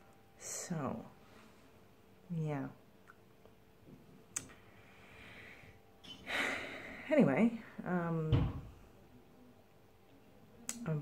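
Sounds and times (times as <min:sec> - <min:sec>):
person breathing: 0:04.5 - 0:07.1.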